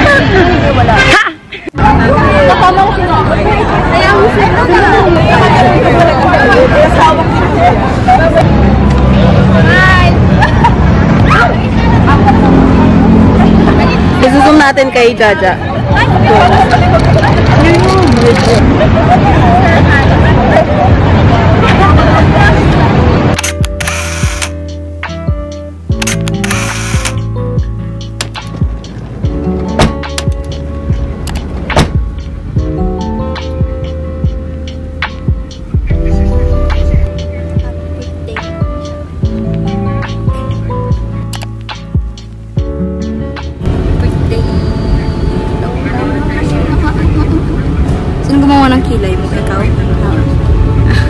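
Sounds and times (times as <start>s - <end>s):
people chattering: 0.0s - 24.5s, 32.4s - 41.4s, 43.6s - 51.0s
voices talking: 0.0s - 24.5s, 43.7s - 51.0s
car engine and road rumble: 0.0s - 51.0s
sharp clicks: 23.4s - 24.6s, 25.9s - 27.2s
background music with drum beat: 24.6s - 26.4s, 27.1s - 43.7s.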